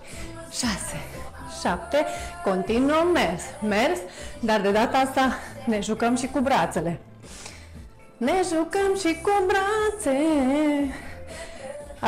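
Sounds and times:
workout background music: 0.0 - 12.0.

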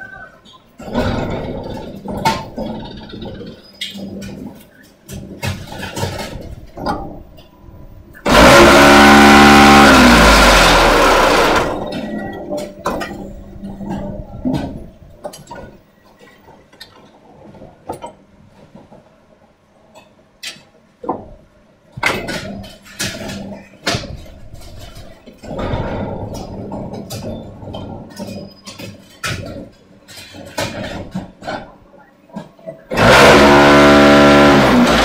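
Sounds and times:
machine parts clanking: 0.4 - 17.2, 22.0 - 35.0.

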